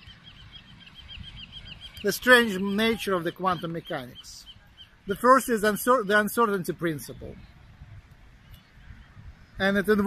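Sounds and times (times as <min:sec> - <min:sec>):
small bird chirping rapidly: 0:00.0 - 0:06.3
low rumble of wind: 0:00.0 - 0:10.0.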